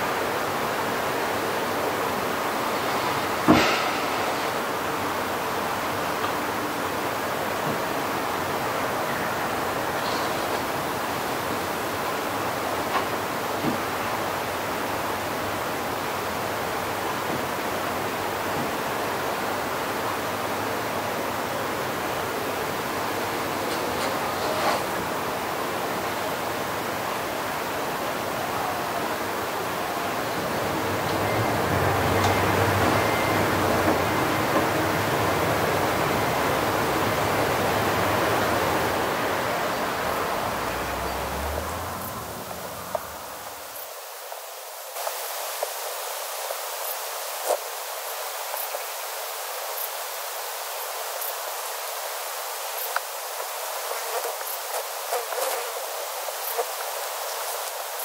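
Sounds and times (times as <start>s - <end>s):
steady rushing noise: 0.0s - 18.5s.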